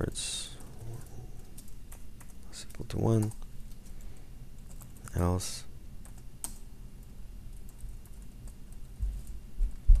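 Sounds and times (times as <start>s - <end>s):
typing on computer keyboard: 0.5s - 4.0s, 4.6s - 5.3s, 6.0s - 6.7s, 7.5s - 10.0s.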